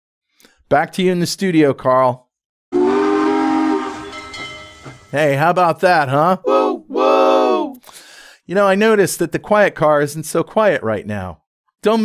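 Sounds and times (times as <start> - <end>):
train horn chord: 2.8 - 5.1.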